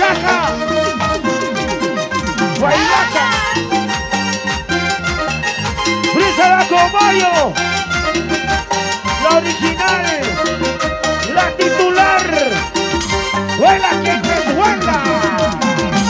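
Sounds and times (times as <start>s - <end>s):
latin american band music: 0.0s - 16.0s.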